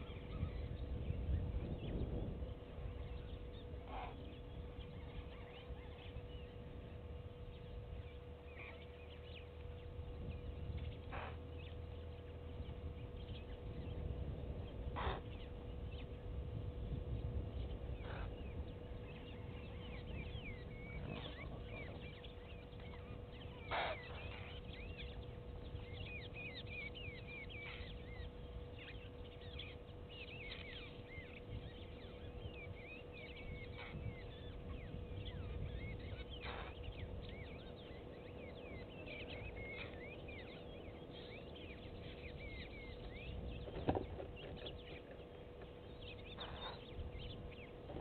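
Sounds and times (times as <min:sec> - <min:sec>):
birds chirping: 0:00.0 - 0:48.0
steady hum: 0:00.0 - 0:48.0.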